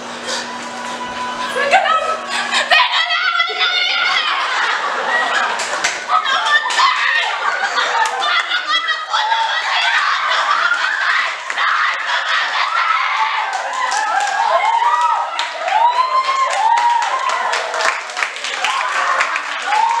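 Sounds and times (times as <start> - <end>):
crowd chatter: 0.0 - 13.8
girl wailing and crying: 1.6 - 4.4
people clapping: 3.9 - 20.0.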